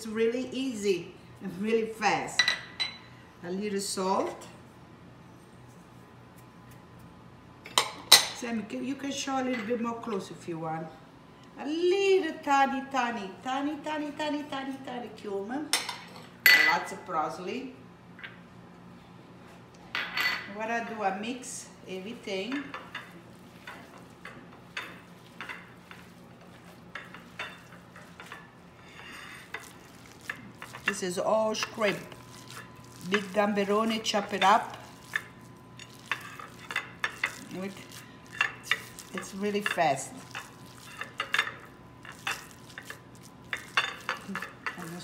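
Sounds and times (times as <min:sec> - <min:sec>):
ceramic dish clinking on bowls: 0:15.8 - 0:16.8, 0:34.4 - 0:45.0
hands squishing wet food mixture: 0:29.3 - 0:45.0.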